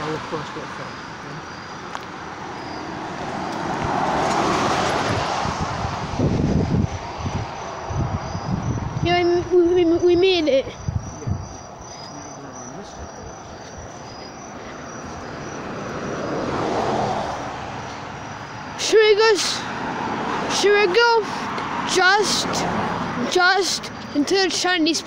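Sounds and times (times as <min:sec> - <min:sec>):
car passing on road: 0:00.0 - 0:25.0.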